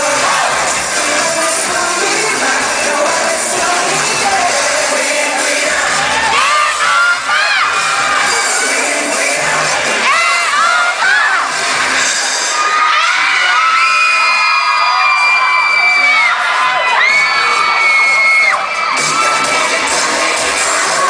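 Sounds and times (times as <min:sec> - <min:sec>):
crowd screaming and cheering: 0:00.0 - 0:21.0
long high-pitched screams: 0:12.5 - 0:19.5.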